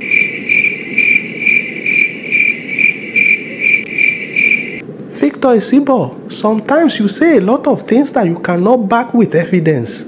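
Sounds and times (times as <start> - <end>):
cricket chirping: 0.0 - 4.8.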